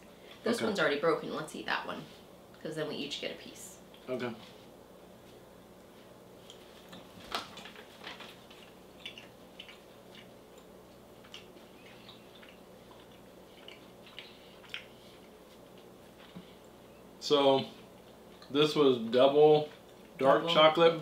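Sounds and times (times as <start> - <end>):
low steady hum: 0.0 - 21.0
people chewing: 5.8 - 16.9, 17.5 - 18.7, 19.6 - 20.5.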